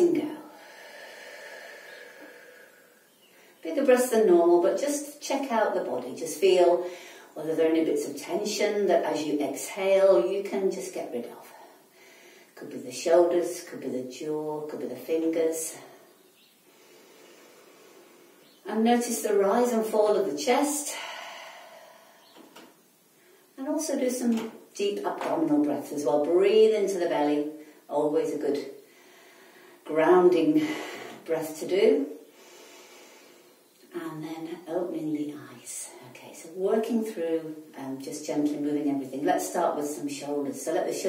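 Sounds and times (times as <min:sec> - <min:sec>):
soft breath: 0:00.4 - 0:03.6, 0:06.8 - 0:07.4, 0:11.5 - 0:12.6, 0:15.8 - 0:18.6, 0:20.8 - 0:23.5, 0:28.8 - 0:29.8, 0:32.2 - 0:33.7
woman exhaling slowly: 0:00.4 - 0:03.6, 0:16.7 - 0:18.6, 0:20.9 - 0:22.7, 0:32.3 - 0:33.6.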